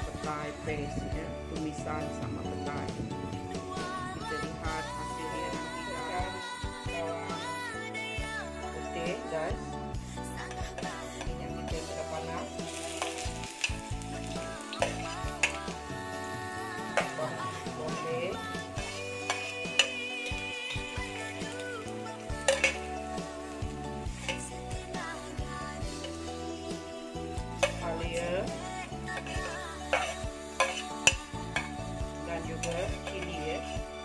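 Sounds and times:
garlic sizzling in hot oil: 10.4 - 34.0
metal spoon clinking on plate: 22.4 - 22.8
metal spoon scraping a plate: 22.4 - 22.9, 27.6 - 31.8.

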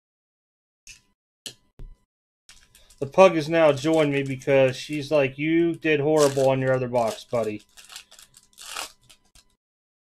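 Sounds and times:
card pack wrapper tearing and crinkling: 2.5 - 9.5.

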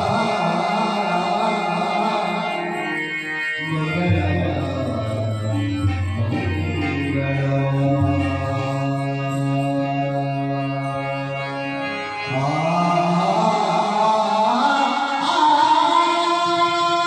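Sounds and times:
harmonium sustained notes: 0.0 - 17.0
man singing devotional song: 0.0 - 17.0.

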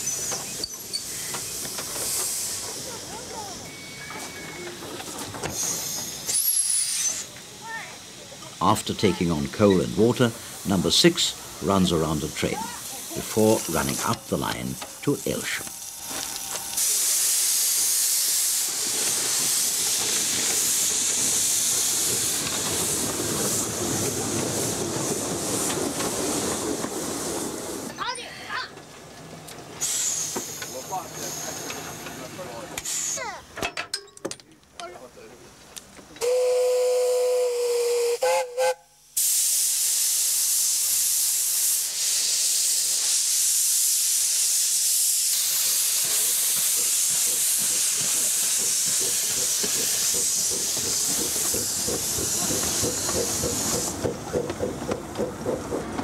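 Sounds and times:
steam hissing: 0.0 - 28.7, 29.7 - 33.4, 36.2 - 56.0
steam whistle blast: 36.2 - 39.7.

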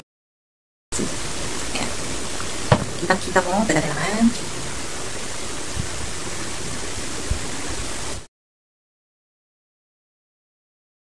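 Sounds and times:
background hiss: 1.0 - 8.3
faint low bumps: 2.7 - 4.0.

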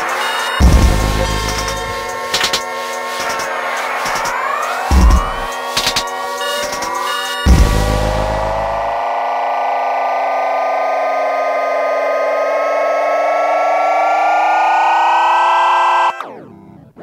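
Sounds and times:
sustained synth chord: 0.0 - 17.0
deep bass note: 0.6 - 2.0, 7.5 - 8.9.

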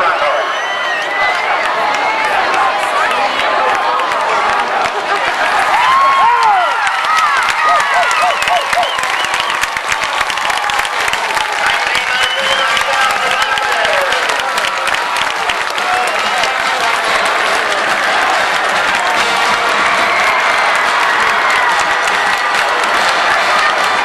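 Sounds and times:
crowd cheering and clapping: 0.0 - 24.0.

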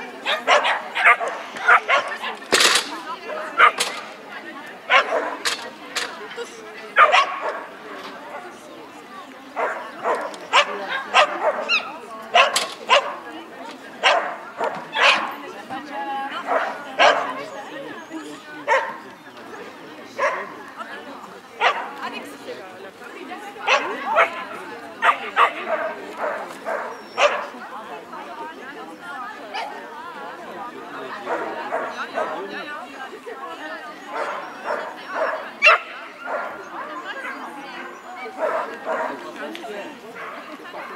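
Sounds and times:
dog barking: 0.2 - 2.3, 4.9 - 5.4, 7.0 - 7.7, 9.6 - 13.2, 14.0 - 15.3, 16.5 - 17.4, 18.7 - 19.0, 20.2 - 20.5, 21.6 - 21.9, 23.7 - 24.4, 25.0 - 27.5, 34.2 - 36.6, 38.3 - 39.2.

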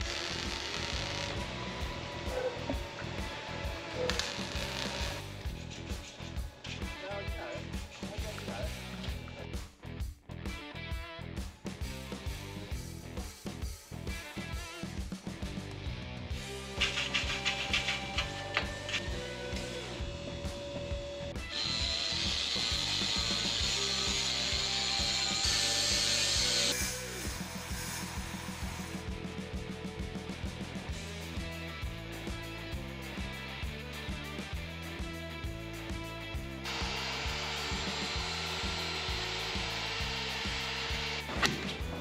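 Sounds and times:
background music with steady beat: 0.9 - 42.0
power tool hissing on metal: 21.6 - 29.0, 36.7 - 41.3.

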